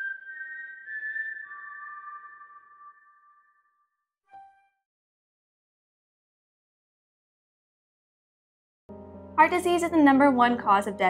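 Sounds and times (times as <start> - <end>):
high whistle-like musical sting: 0.0 - 4.8.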